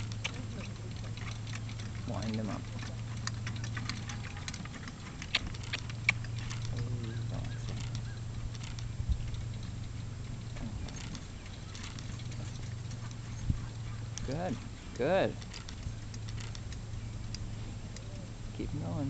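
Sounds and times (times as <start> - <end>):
harness clicks: 0.0 - 18.2
horse hooves trotting on grass: 0.0 - 19.0
steady low hum: 0.0 - 19.0.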